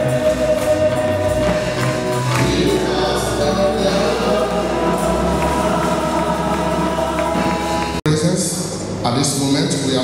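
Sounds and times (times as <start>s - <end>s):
congregation singing a hymn: 0.0s - 8.7s
hand-clapping: 1.4s - 2.7s.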